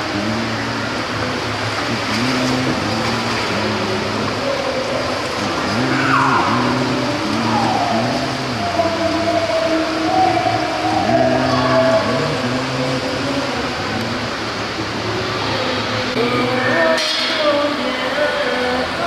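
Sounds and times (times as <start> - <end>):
group of voices singing: 0.0 - 19.0.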